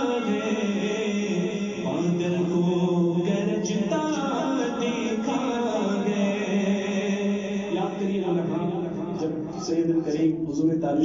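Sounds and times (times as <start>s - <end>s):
person chanting a devotional song: 0.0s - 11.0s.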